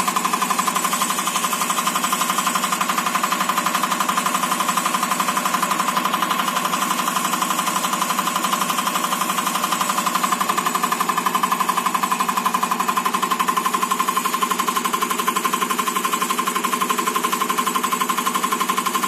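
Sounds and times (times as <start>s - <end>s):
fast mechanical clatter: 0.0s - 19.0s
steady machine whine: 0.0s - 19.0s.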